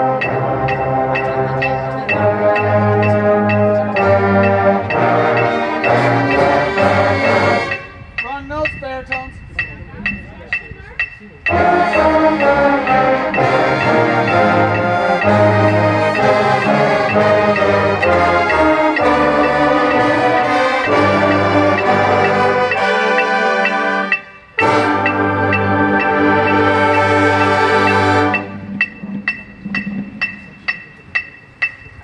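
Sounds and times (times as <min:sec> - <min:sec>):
marching band brass playing: 0:00.0 - 0:08.2, 0:11.5 - 0:30.1
metronome clicks: 0:00.0 - 0:32.0.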